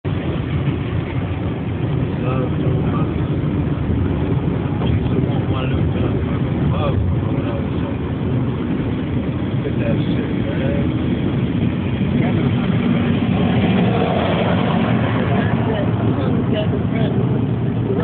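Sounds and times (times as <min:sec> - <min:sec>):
car engine and tyre noise: 0:00.0 - 0:18.0.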